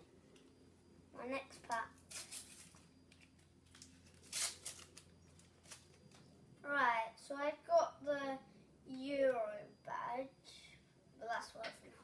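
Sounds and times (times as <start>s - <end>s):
sticker packet ripping: 2.1s - 6.2s.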